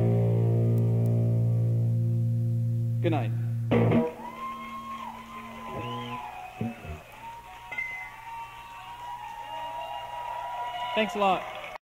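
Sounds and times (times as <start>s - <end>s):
audience whooping and whistling: 4.0s - 11.8s.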